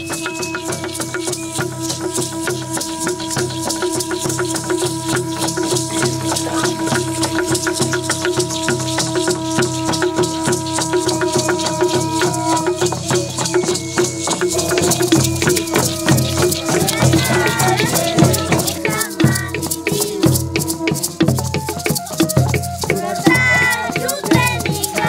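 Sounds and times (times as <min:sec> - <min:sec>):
hand rattles shaking: 0:00.0 - 0:25.0
steady held tone: 0:00.1 - 0:21.7.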